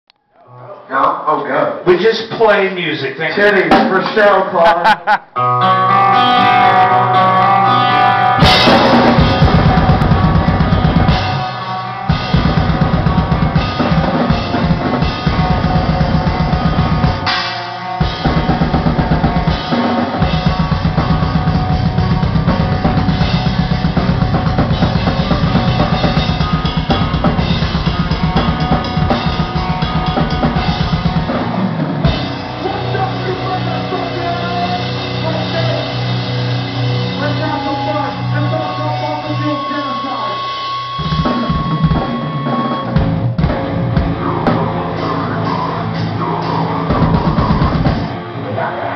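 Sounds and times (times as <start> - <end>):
death metal band playing live: 3.4 - 48.9
guitar notes ringing: 5.4 - 43.2
fast drums and cymbals: 8.4 - 48.1.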